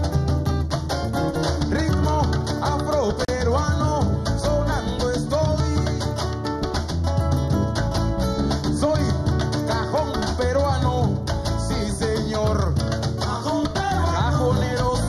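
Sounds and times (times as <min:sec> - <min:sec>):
acoustic guitar: 0:00.0 - 0:15.0
hand drums steady rhythm: 0:00.0 - 0:15.0
person singing: 0:01.7 - 0:06.1, 0:08.8 - 0:15.0.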